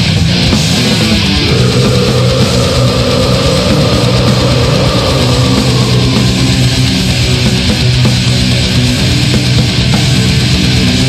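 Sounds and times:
distorted guitars and bass: 0.0s - 11.0s
fast dense drumming: 0.5s - 11.0s.

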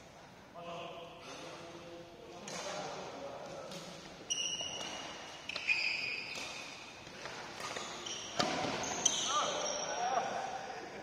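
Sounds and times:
shoes squeaking on court floor: 3.7s - 10.1s.

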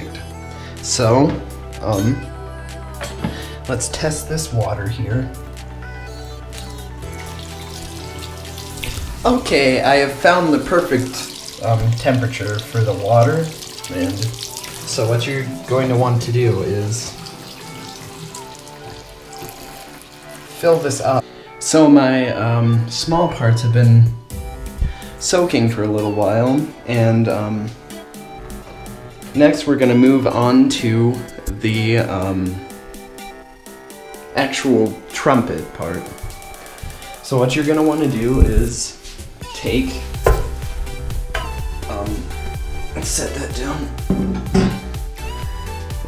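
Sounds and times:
background music: 0.0s - 46.0s
faucet running into plastic tub: 7.0s - 21.2s
trumpet knocking on hard surfaces: 40.2s - 40.6s, 44.0s - 45.0s.

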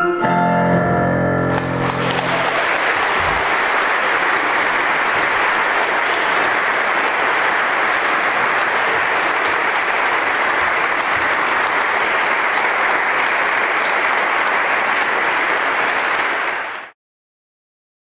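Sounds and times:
audience applauding: 1.4s - 17.0s.

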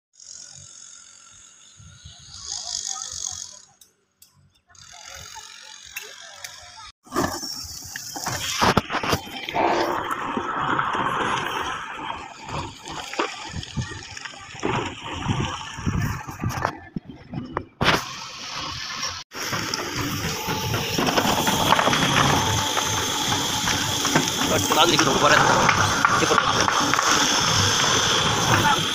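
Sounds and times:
bucket scraping stony soil: 7.0s - 16.8s, 19.1s - 28.9s
stones and soil rattling from bucket: 19.4s - 28.9s.

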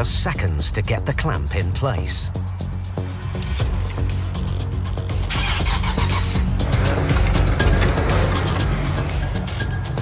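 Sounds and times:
car engine revving: 4.4s - 9.6s.

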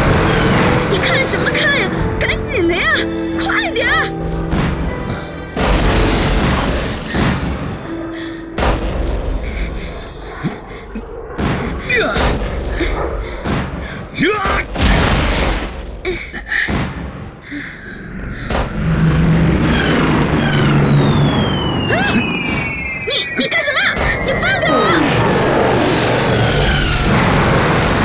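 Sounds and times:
bomb explosions: 0.0s - 2.5s, 4.1s - 16.1s, 18.1s - 28.0s
low drone: 0.0s - 28.0s
falling bomb whistles: 18.6s - 28.0s.

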